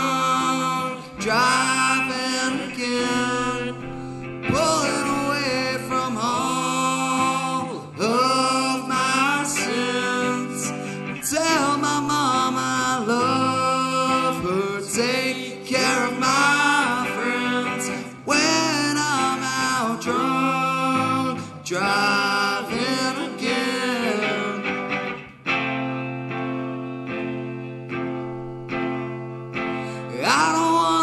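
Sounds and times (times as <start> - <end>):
man singing: 0.0 - 25.2, 29.9 - 31.0
electric guitar: 0.0 - 31.0
electric bass: 2.0 - 6.5.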